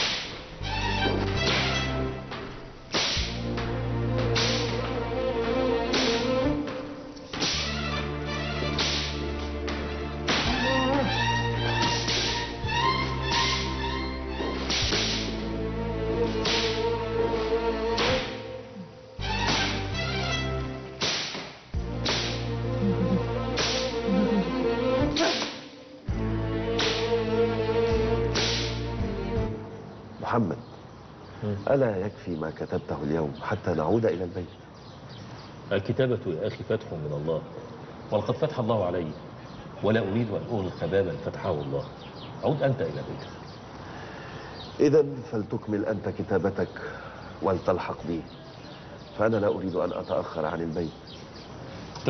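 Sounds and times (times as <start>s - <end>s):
whip cracking: 0.0s - 0.5s, 1.3s - 1.9s, 2.9s - 5.0s, 5.9s - 7.8s, 8.7s - 10.7s, 11.7s - 12.6s, 13.3s - 13.8s, 14.6s - 15.5s, 16.3s - 16.9s, 18.0s - 18.5s, 19.4s - 20.0s, 21.0s - 22.5s, 23.6s - 24.0s, 25.1s - 25.8s, 26.8s - 27.2s, 28.3s - 28.9s
background music low notes: 0.0s - 30.7s.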